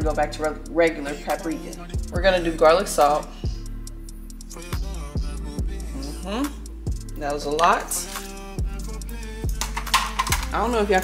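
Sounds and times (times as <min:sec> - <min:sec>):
music with held chords: 0:00.0 - 0:11.0
deep kick drum: 0:02.0 - 0:02.4.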